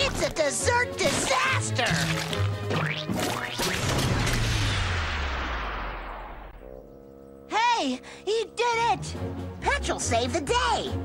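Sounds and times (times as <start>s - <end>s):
loud crash: 3.8s - 6.6s.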